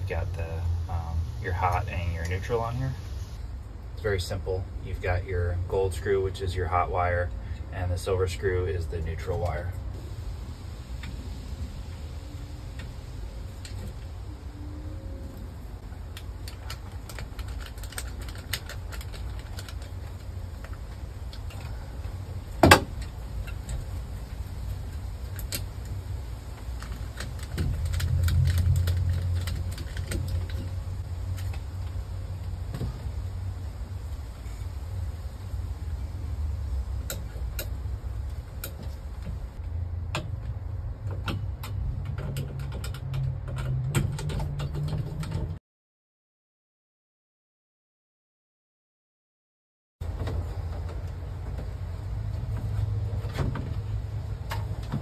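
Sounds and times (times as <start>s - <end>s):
low steady rumble: 0.0s - 45.5s.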